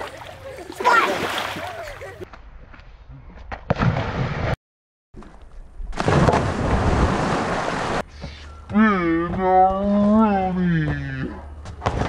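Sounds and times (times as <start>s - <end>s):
person jumping into pool splash: 0.0s - 2.3s, 3.7s - 4.6s, 5.2s - 8.0s.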